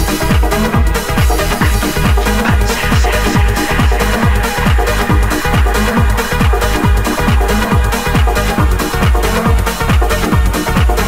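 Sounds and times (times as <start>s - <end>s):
kick drum beat: 0.0s - 11.0s
trance music: 0.0s - 11.0s.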